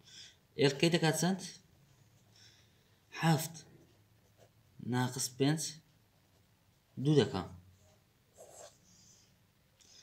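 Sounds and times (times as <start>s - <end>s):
pen writing on paper: 8.3s - 8.8s.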